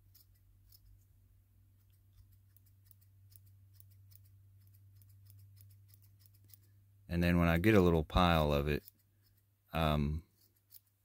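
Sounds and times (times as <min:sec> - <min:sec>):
small scissors snipping: 0:00.0 - 0:01.0, 0:02.1 - 0:06.7.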